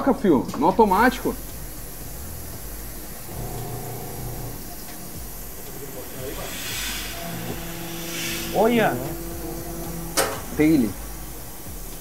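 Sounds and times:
router cutting with steady hiss: 0:00.9 - 0:12.0
low steady hum: 0:04.4 - 0:12.0.

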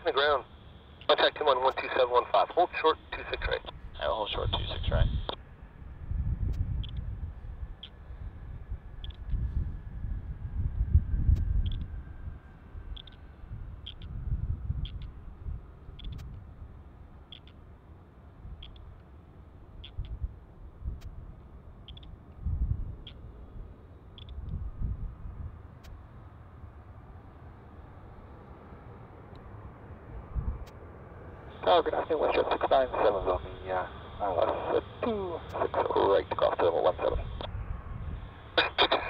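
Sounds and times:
jet engines whining: 0:00.0 - 0:09.0, 0:25.3 - 0:39.0
wind buffeting microphone: 0:03.7 - 0:16.7, 0:19.8 - 0:26.0, 0:30.0 - 0:30.7, 0:37.2 - 0:38.6.

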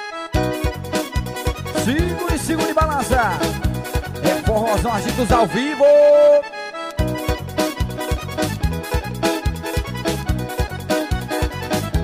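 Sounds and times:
band music with accordion: 0:00.0 - 0:12.0
drum and bass beat: 0:00.4 - 0:05.5, 0:07.0 - 0:12.0.

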